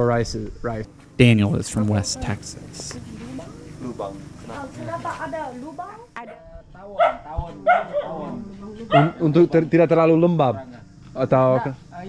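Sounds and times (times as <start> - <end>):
faint background talk: 1.7 - 12.0
dog barking: 7.0 - 9.3.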